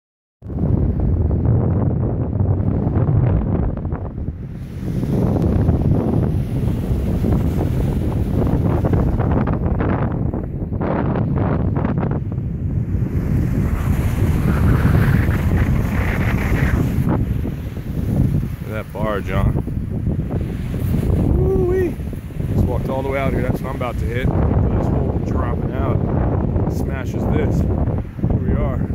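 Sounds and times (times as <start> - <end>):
wind buffeting microphone: 0.4 - 28.9
surf breaking on beach: 0.5 - 28.9.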